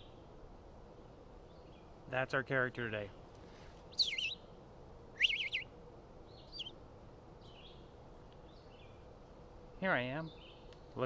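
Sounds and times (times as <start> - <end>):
bird singing whistled phrases: 3.9 - 4.4, 5.2 - 5.7, 6.4 - 6.7.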